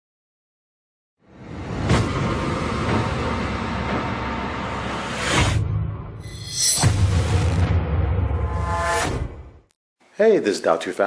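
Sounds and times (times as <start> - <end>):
low rumble: 1.3 - 8.7.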